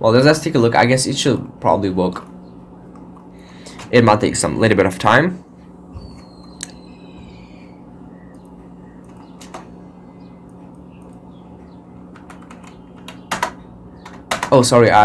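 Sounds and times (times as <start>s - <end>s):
steady low hum: 0.0s - 15.0s
computer keyboard clicks: 12.2s - 14.6s.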